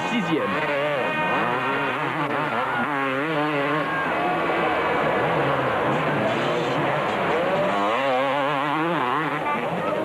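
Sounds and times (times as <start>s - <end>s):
motocross motorcycles racing: 0.0s - 10.0s.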